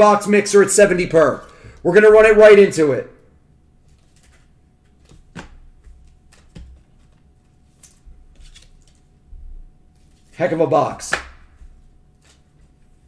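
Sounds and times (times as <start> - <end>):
faint steady hum: 0.0 - 13.0
trading cards and plastic wrap handling: 3.8 - 9.2, 11.6 - 13.0.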